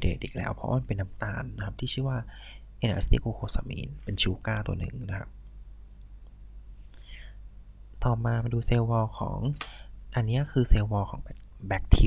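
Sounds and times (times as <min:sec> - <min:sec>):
faint recording hiss: 0:00.0 - 0:12.0
low electrical hum: 0:00.0 - 0:12.0
faint breathy sound: 0:02.2 - 0:02.8, 0:06.8 - 0:07.5, 0:09.6 - 0:10.0.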